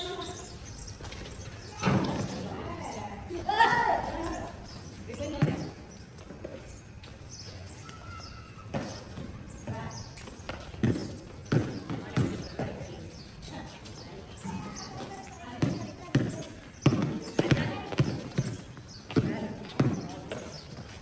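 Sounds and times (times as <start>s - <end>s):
voices: 0.0s - 21.0s
basketball bouncing on concrete: 5.1s - 6.6s, 8.7s - 13.0s, 14.5s - 20.9s.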